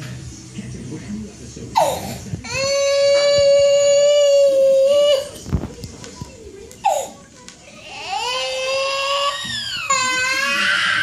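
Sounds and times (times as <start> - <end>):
toddler crying and wailing: 2.4 - 5.4, 7.7 - 11.0.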